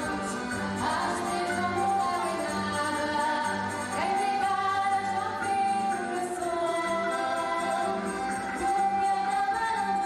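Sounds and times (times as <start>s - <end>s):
musical backing: 0.0s - 10.0s
women singing: 0.0s - 10.0s.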